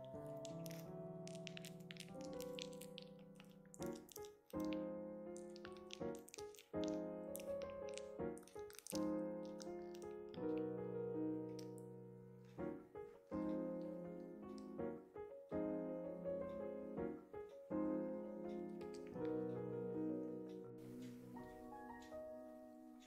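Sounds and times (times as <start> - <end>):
slow piano chords: 0.0 - 23.0.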